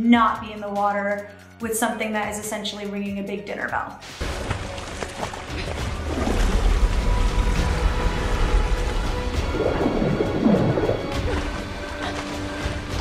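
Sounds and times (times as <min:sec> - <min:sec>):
dramatic music: 0:04.0 - 0:13.0
stormy sea water splashing: 0:04.0 - 0:13.0
deep rumble: 0:04.4 - 0:13.0.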